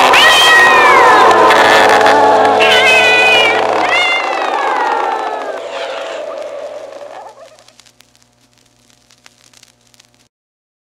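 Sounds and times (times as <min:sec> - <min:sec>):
cat yowl sliding downward: 0:00.0 - 0:01.5, 0:02.6 - 0:07.7
vinyl record crackle: 0:00.0 - 0:10.3.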